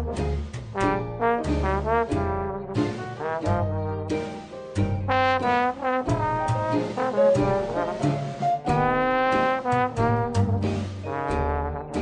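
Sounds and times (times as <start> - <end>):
trumpet: 0.0 - 4.2, 5.1 - 12.0
jazz band playing: 0.0 - 12.0
trombone: 0.0 - 12.0.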